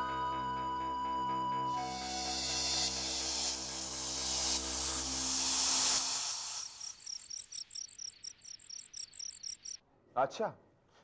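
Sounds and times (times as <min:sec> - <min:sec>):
background music sustained tones: 0:00.0 - 0:07.9
crickets chirping: 0:01.8 - 0:09.8.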